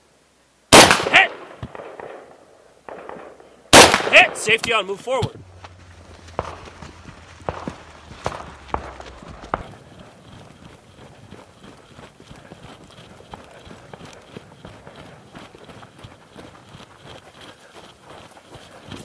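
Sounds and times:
footsteps on gravel trail: 4.1s - 19.0s.

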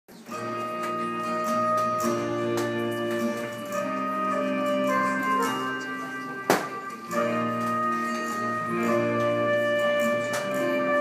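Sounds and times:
instrumental held chords: 0.1s - 11.0s
sharp knock: 6.5s - 6.8s.

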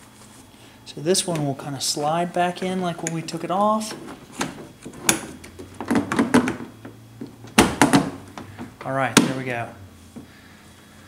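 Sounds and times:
door handle snapping into place: 7.5s - 8.2s.

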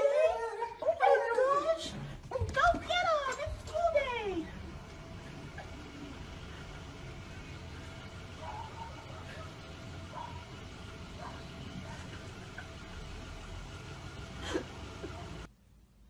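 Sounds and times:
faint outdoor background noise: 0.0s - 16.0s.

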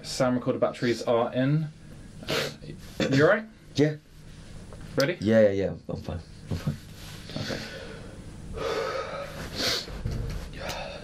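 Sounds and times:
person breathing: 7.1s - 11.0s.

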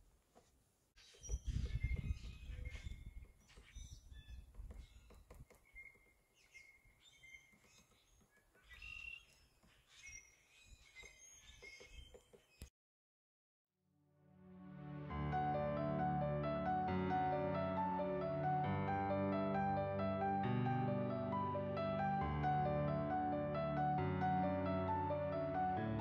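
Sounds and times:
bird chirps: 1.0s - 12.7s
wind rumble on microphone: 1.2s - 5.1s.

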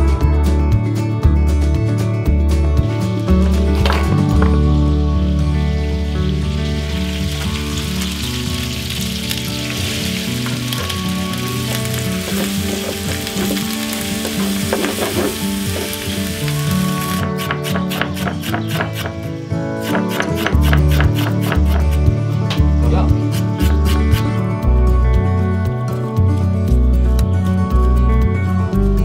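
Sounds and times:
background music: 0.0s - 29.0s
onion sizzling in a pan: 4.1s - 22.0s.

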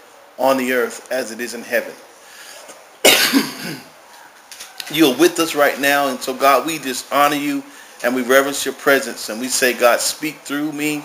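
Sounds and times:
man coughing: 3.0s - 3.9s.

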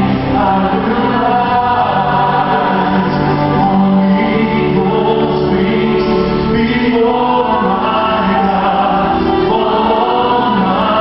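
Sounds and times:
church choir singing: 0.0s - 11.0s.

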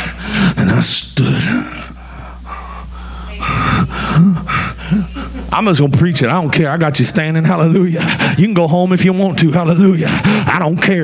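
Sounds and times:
man preaching: 0.0s - 2.0s, 5.5s - 11.0s
man gasping breaths into microphone: 10.0s - 10.5s.

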